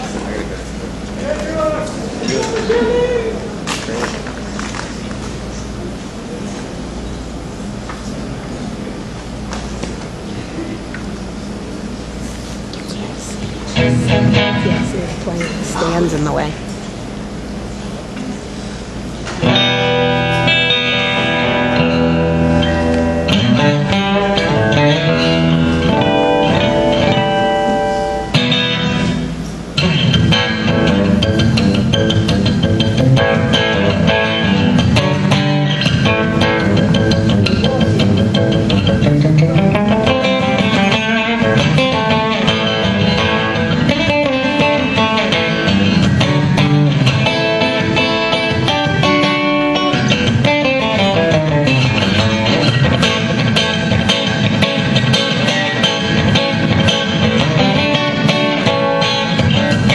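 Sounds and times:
steady low hum: 0.0s - 59.9s
acoustic guitar chords: 13.7s - 15.1s, 19.4s - 59.9s.

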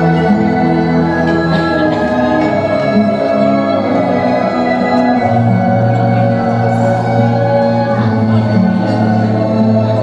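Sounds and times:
choir singing long notes: 0.0s - 10.0s
instrumental backing music: 0.0s - 10.0s.

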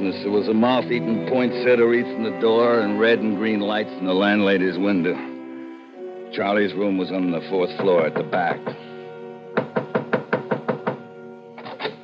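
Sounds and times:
sustained music chord: 0.0s - 12.0s
knocking on a door: 9.6s - 11.1s.

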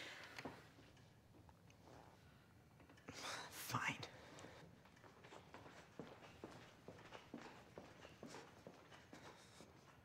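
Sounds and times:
person whispering: 3.2s - 4.2s.

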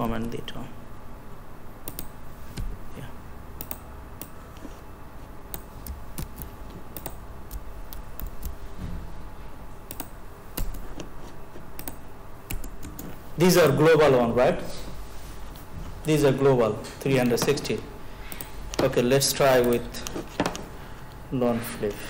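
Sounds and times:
low background hum: 0.0s - 22.0s
typing on computer keyboard: 5.5s - 8.6s, 9.9s - 11.0s, 11.8s - 13.2s.

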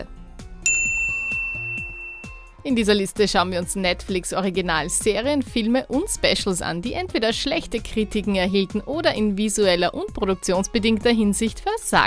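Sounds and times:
soft background music: 0.0s - 12.0s
bell ding: 0.6s - 2.6s.

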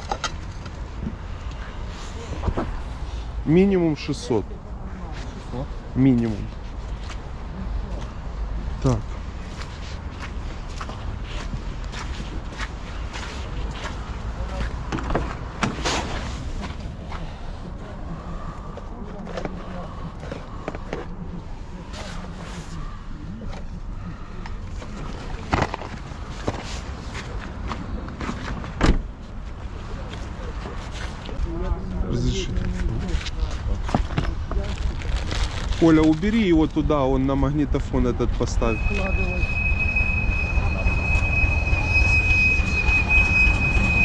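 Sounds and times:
boxes being handled and moved: 24.6s - 31.5s.

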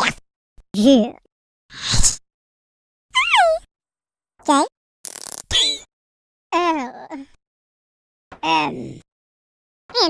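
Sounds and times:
high-pitched cartoon voice: 3.2s - 3.7s.

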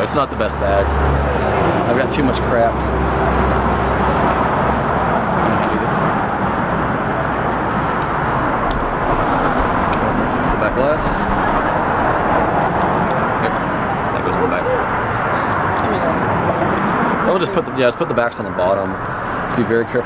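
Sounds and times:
road traffic noise: 0.0s - 20.0s.

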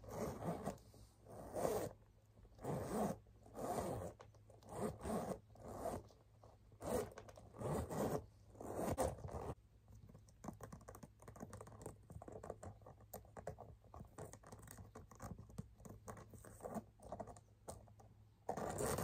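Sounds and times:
zipper being pulled: 0.0s - 6.1s, 6.8s - 9.6s, 18.5s - 19.0s.

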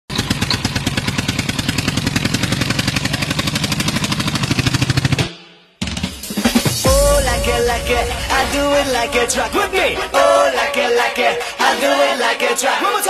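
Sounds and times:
engine chugging fast: 0.1s - 11.9s
dance music: 5.9s - 13.0s.

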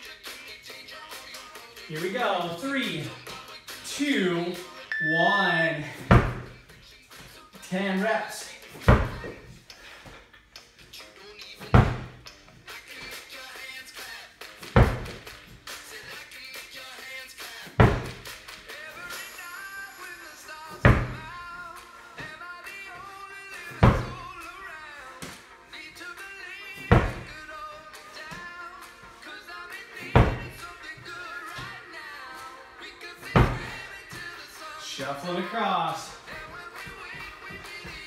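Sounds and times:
background music with singing: 0.0s - 38.0s
slam ball thuds on rubber mat: 6.0s - 6.6s, 8.8s - 9.4s, 11.6s - 12.2s, 14.7s - 15.3s, 17.8s - 18.3s, 20.8s - 21.3s, 23.7s - 24.4s, 26.8s - 27.4s, 30.0s - 30.6s, 33.3s - 33.8s.

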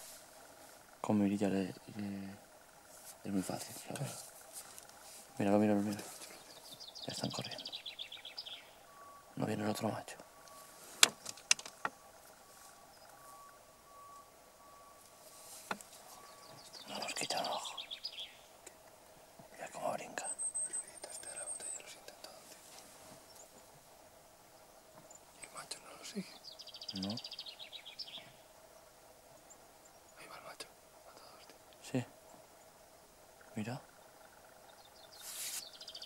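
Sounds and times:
faint whisper: 16.7s - 17.8s, 19.5s - 22.8s, 25.4s - 26.4s, 30.2s - 32.1s.

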